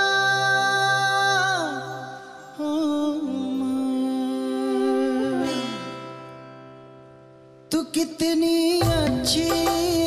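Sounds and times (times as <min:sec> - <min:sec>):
soft instrumental backing: 0:00.0 - 0:10.0.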